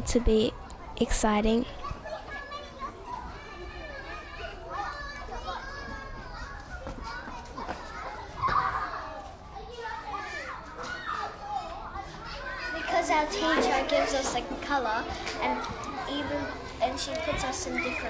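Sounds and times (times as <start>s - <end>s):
children chattering and calling out: 0.0s - 18.0s.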